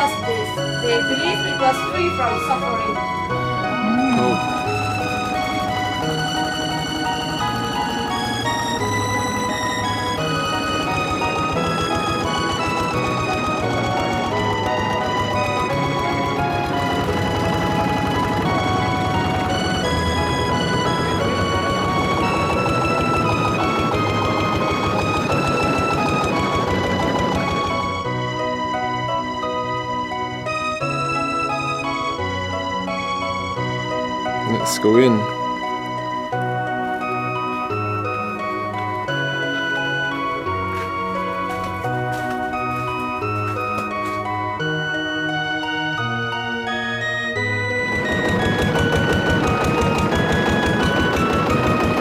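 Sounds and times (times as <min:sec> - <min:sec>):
instrumental music with bass line: 0:00.0 - 0:52.0.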